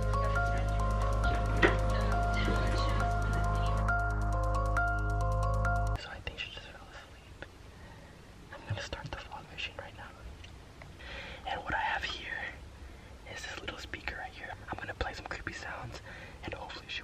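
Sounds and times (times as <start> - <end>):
man whispering: 6.0 - 7.5, 8.5 - 10.3, 11.4 - 12.6, 13.2 - 17.0.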